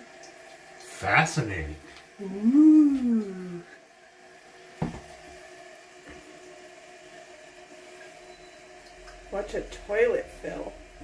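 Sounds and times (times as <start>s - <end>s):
toilet tank refilling hiss: 0.0s - 11.0s.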